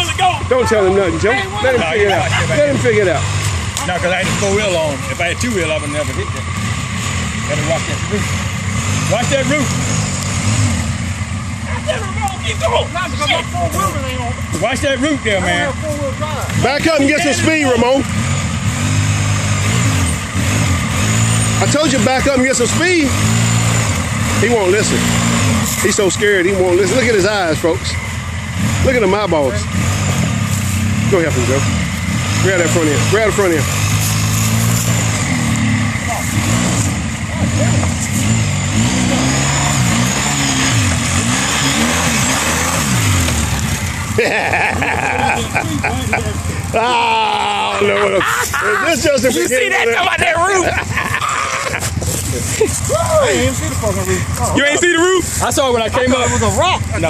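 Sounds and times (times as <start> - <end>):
atv engine under load: 0.0 - 57.0.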